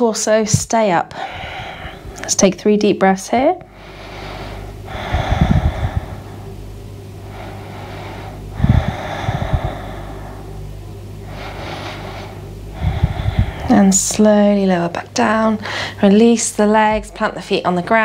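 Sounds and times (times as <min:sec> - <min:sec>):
woman breathing deeply: 0:01.1 - 0:02.3, 0:03.7 - 0:14.1, 0:15.6 - 0:16.0.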